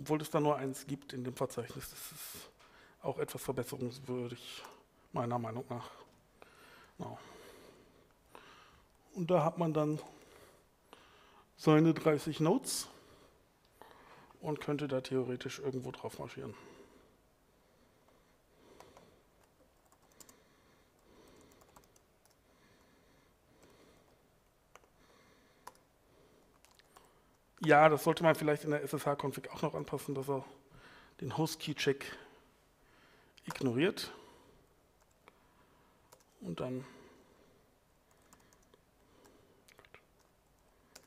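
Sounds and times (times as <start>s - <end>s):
soft keyboard typing: 18.8s - 22.4s, 23.6s - 25.0s, 25.6s - 27.4s, 33.4s - 33.8s, 35.0s - 35.4s, 36.1s - 36.4s, 38.0s - 41.0s.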